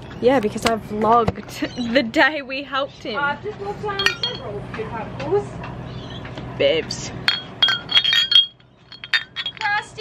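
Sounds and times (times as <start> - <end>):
glass bottles clinking: 4.0 - 4.5, 7.2 - 10.0.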